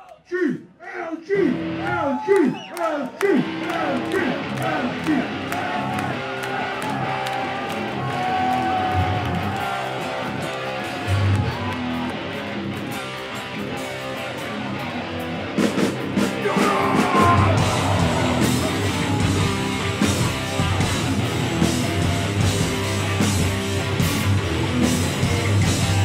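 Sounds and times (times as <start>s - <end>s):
electric guitar: 3.4s - 26.0s
metal band playing live: 3.4s - 26.0s.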